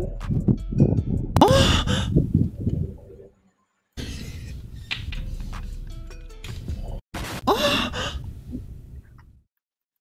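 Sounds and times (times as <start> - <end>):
gasp-like vocal cry: 1.4 - 2.1.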